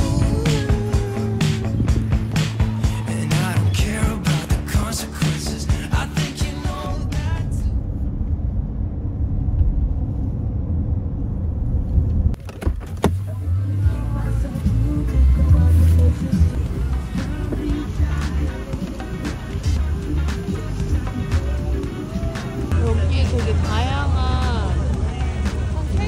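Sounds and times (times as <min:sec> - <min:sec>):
car cabin rumble: 0:06.6 - 0:15.0.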